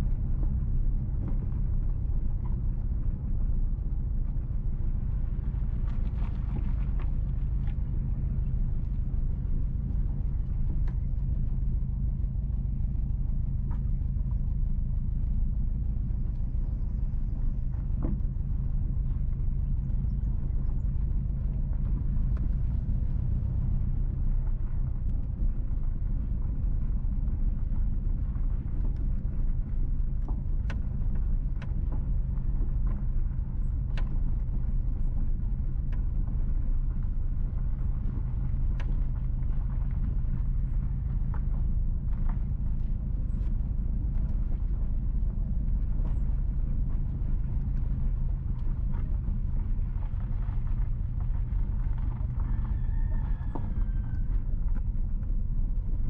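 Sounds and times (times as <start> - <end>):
car engine and tyre rumble: 0.0 - 56.0.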